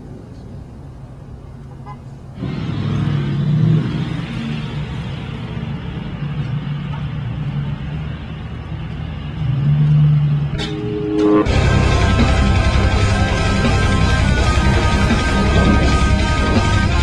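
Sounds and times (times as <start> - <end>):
vehicle engine rumbling: 0.0 - 17.0.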